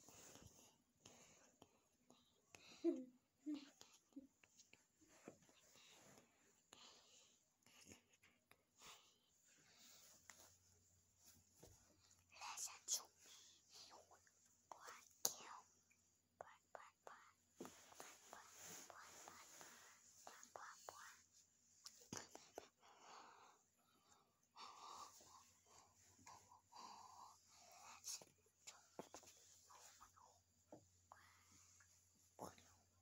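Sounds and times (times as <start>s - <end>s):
child whispering: 1.6s - 4.7s, 12.2s - 15.7s, 16.4s - 21.3s, 21.9s - 23.5s, 24.4s - 30.4s, 31.1s - 33.0s.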